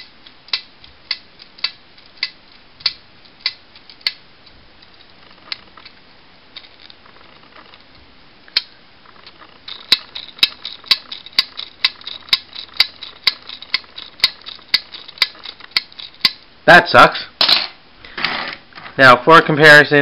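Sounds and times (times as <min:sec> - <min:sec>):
plastic toy parts clicking: 0:00.0 - 0:06.0, 0:08.5 - 0:16.4.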